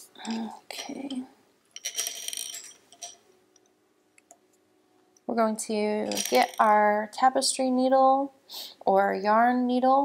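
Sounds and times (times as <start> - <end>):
knitting needles clattering: 0.2 - 4.4, 6.0 - 6.9.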